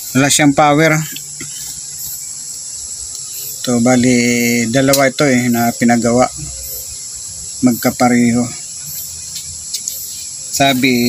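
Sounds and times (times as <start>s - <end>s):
steady high-pitched drone: 0.0s - 11.0s.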